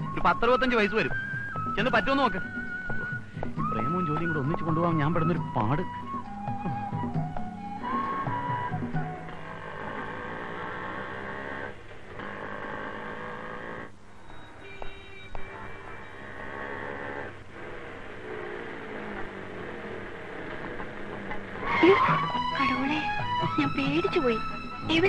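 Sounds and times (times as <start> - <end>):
motorcycle engine running: 8.8 - 14.0.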